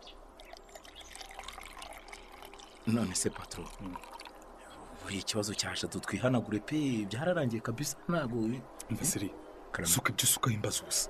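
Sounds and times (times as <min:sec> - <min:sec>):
person talking: 0:02.9 - 0:04.1, 0:05.0 - 0:11.0.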